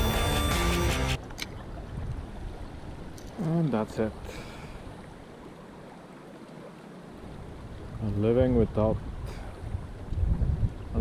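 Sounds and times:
shallow river flowing: 0:01.2 - 0:11.0
wind buffeting microphone: 0:01.5 - 0:03.2, 0:07.4 - 0:11.0.

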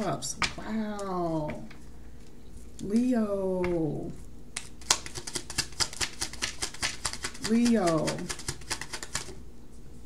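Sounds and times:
cards being shuffled: 0:04.6 - 0:09.4.

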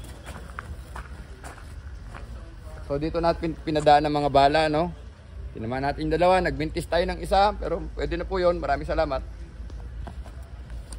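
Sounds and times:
footsteps on grass: 0:00.0 - 0:03.0.

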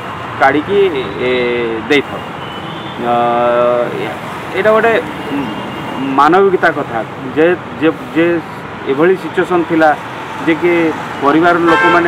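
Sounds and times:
steady background noise: 0:00.0 - 0:12.0
man speaking: 0:00.4 - 0:02.3, 0:03.0 - 0:12.0.

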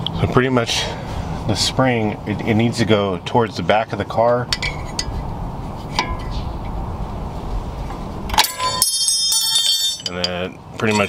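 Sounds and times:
metallic clang with ringing: 0:08.3 - 0:11.0.

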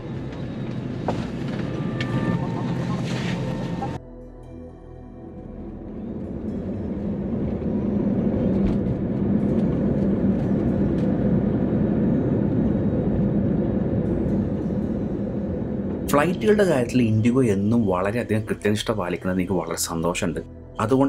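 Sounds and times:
jet engines roaring in cabin: 0:00.0 - 0:04.0, 0:05.7 - 0:18.5
steady low hum: 0:00.0 - 0:18.9.

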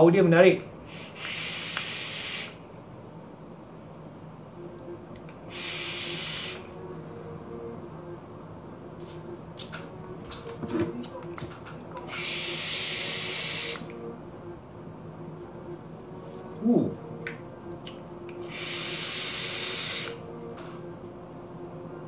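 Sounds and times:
vape draws and exhaled vapour: 0:00.9 - 0:02.6, 0:05.5 - 0:06.7, 0:12.1 - 0:13.9, 0:18.4 - 0:20.2.

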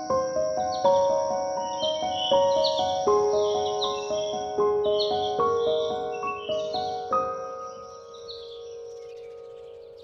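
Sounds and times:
piano chord: 0:00.0 - 0:10.0
small birds chirping: 0:00.0 - 0:10.0.

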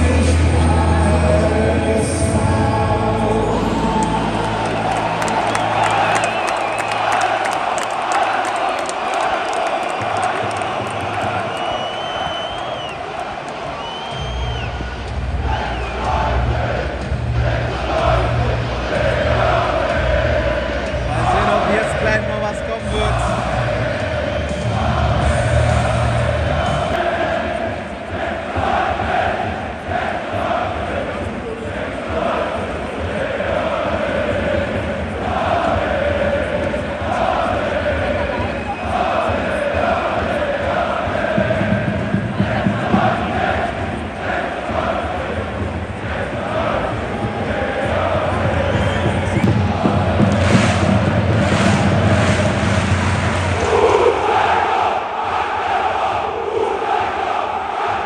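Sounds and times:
stadium crowd chanting and singing: 0:00.0 - 0:58.0.

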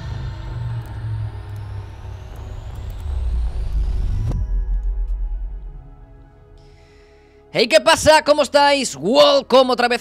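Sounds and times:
deep steady rumble: 0:00.0 - 0:07.5
faint rising whoosh: 0:00.0 - 0:07.5.

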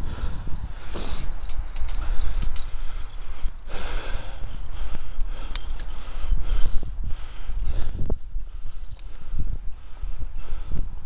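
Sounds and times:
wind rumbling on microphone: 0:00.0 - 0:11.0
bicycle knocks and rattles: 0:01.0 - 0:03.5.

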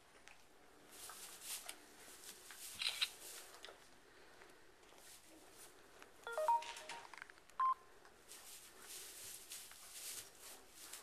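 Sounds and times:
electronic keypad beeps: 0:06.3 - 0:07.8
straw rustling: 0:08.3 - 0:11.0.

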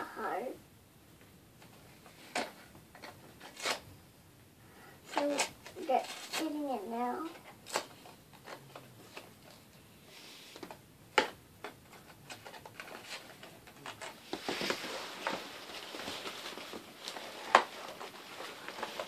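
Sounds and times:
packaging rustling and crinkling: 0:11.6 - 0:19.0.

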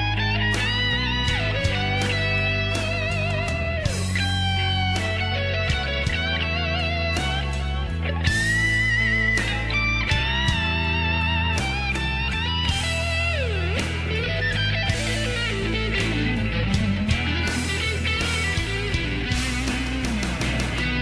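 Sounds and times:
bass line: 0:00.0 - 0:21.0
drums: 0:00.0 - 0:21.0
electric guitar lead notes: 0:00.0 - 0:21.0.

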